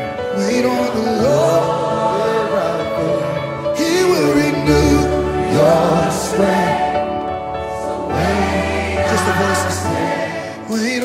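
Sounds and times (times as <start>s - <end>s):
man singing lead: 0.0s - 7.1s, 8.1s - 11.0s
gospel band playing: 0.0s - 11.0s
choir singing: 0.3s - 11.0s.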